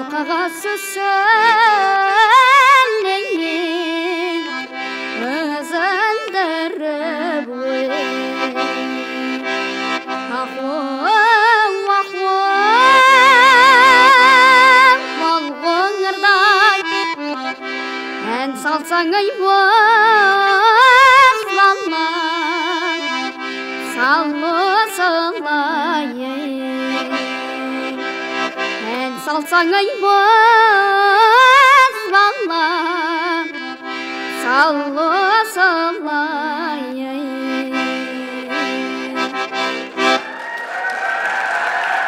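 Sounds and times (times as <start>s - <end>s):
boy singing with vibrato: 0.0s - 40.2s
accordion sustained chords: 0.0s - 40.4s.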